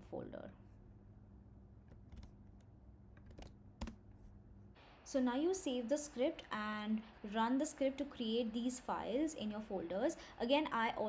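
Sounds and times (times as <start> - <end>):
computer keyboard keystrokes: 3.2 - 4.0.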